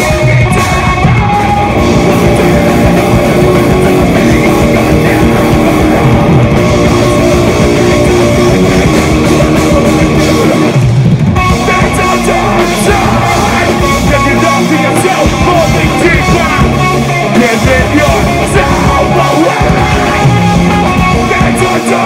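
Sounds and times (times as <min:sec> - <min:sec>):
metal band playing loud: 0:00.0 - 0:22.0.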